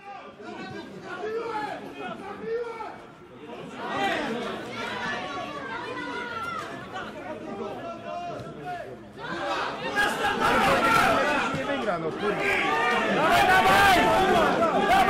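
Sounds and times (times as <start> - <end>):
men talking and calling out: 0.0 - 15.0.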